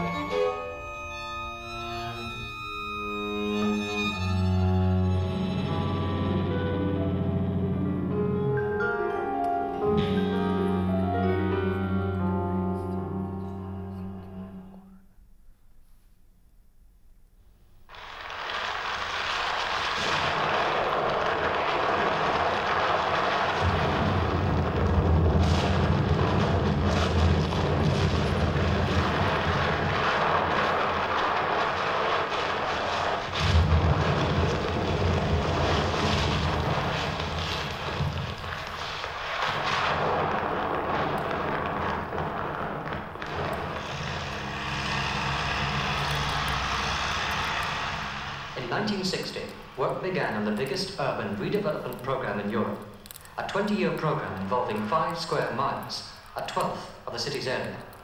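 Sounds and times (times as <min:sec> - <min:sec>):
sharp crashes: 0:17.9 - 0:56.6
collapsing masonry rumble: 0:17.9 - 0:58.0.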